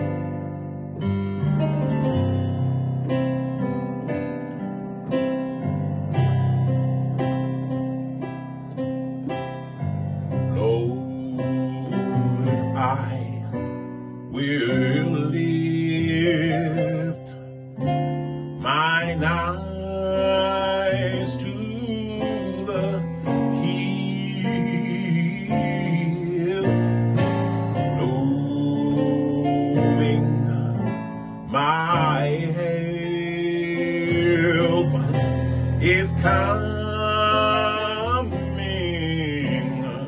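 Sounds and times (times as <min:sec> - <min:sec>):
man singing: 0:10.4 - 0:17.6, 0:18.6 - 0:40.0.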